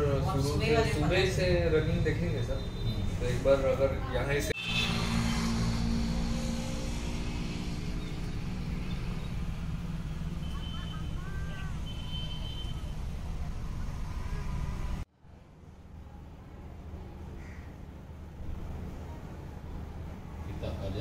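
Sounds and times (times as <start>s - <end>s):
vehicle engine humming: 0.0s - 15.1s
road traffic rumble: 0.0s - 21.0s.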